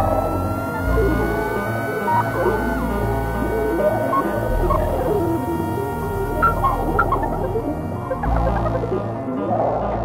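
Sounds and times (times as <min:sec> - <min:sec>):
held synthesizer tones: 0:00.0 - 0:09.1
low drone: 0:00.0 - 0:09.4.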